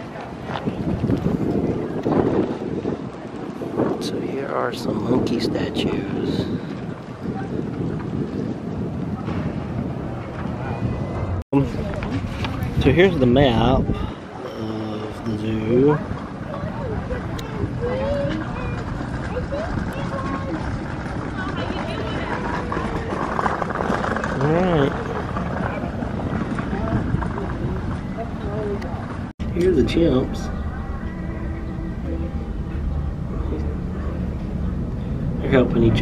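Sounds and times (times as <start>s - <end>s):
faint voices: 0.0s - 36.0s
wind buffeting microphone: 0.0s - 36.0s.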